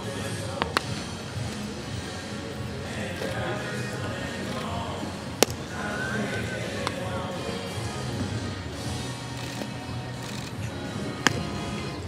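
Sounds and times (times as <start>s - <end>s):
background music: 0.0s - 12.0s
outdoor field ambience: 0.0s - 12.0s
bat hitting a baseball: 5.4s - 5.8s.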